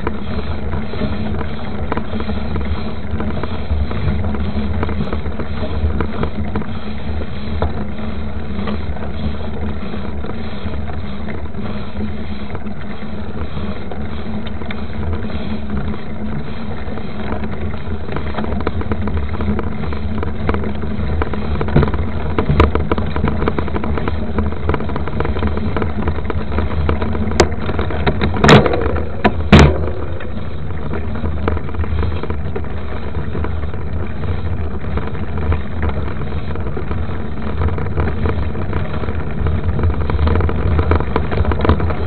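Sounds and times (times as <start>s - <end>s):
bike tyres rumbling on dirt: 0.0s - 42.0s
knocks and rattles from bumps: 17.4s - 42.0s.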